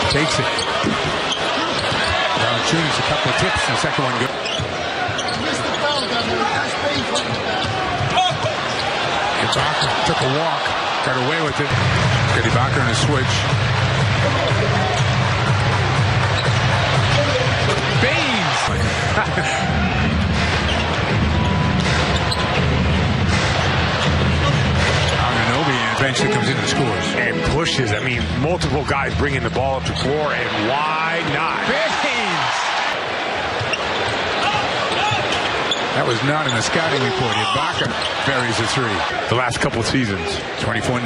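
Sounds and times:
arena crowd noise: 0.0s - 41.0s.

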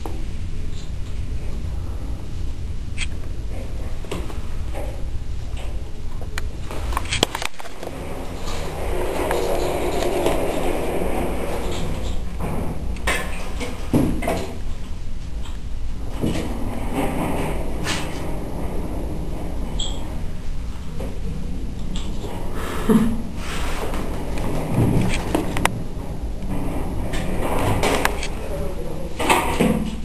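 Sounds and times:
low rumble: 0.0s - 30.0s.

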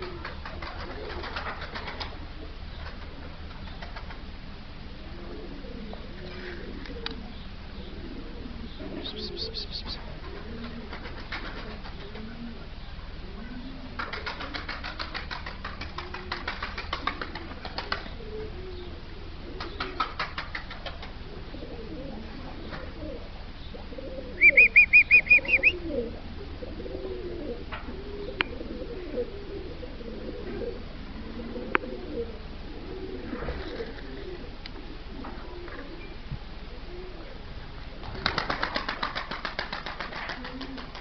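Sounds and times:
pigeon wings flapping: 0.0s - 4.3s, 9.4s - 12.5s, 13.8s - 18.6s, 19.4s - 21.4s, 33.2s - 34.4s, 38.0s - 41.0s
pigeons cooing: 0.0s - 41.0s
high chirps: 24.4s - 25.8s.

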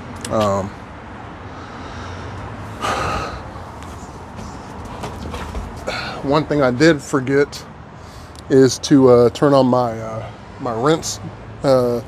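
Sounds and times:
man sighing: 2.8s - 3.5s, 5.8s - 6.2s.

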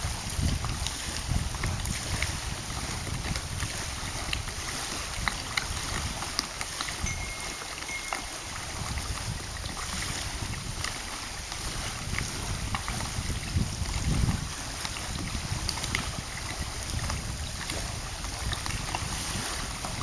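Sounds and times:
small waves lapping: 0.0s - 20.0s
wind buffeting microphone: 0.0s - 20.0s
faint high steady tone: 7.0s - 8.9s.

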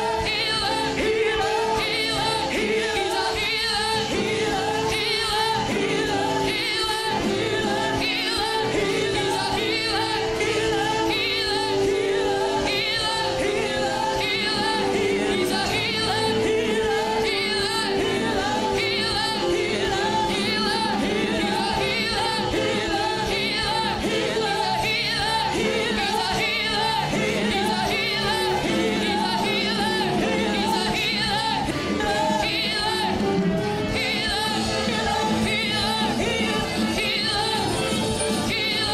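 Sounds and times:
church worship music with singing: 0.0s - 38.9s.

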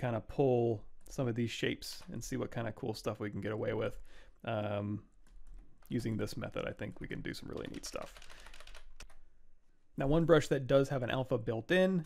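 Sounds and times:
computer keyboard clicks: 7.4s - 9.2s.

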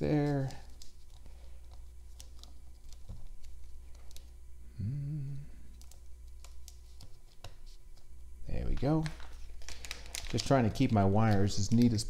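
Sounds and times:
steady low hum: 0.0s - 12.0s
murmured voice: 4.7s - 5.6s.

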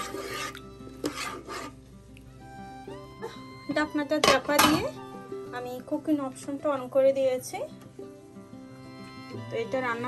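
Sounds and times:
metal spoon scraping pot: 0.0s - 1.8s.

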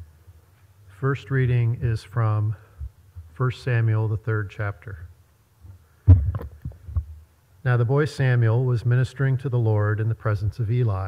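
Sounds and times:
thumps and knocks on microphone: 5.6s - 7.2s.

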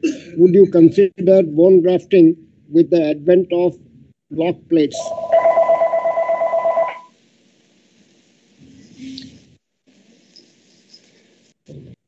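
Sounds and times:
telephone ringing: 4.9s - 7.1s.

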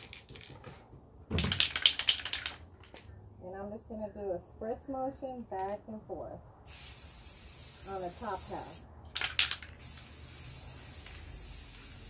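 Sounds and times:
spray paint can rattling: 1.4s - 3.0s, 6.7s - 12.0s.

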